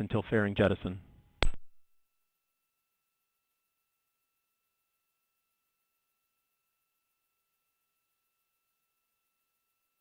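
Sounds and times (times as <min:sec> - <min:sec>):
sharp click: 0:01.4 - 0:01.8
faint thin steady tone: 0:02.2 - 0:10.0.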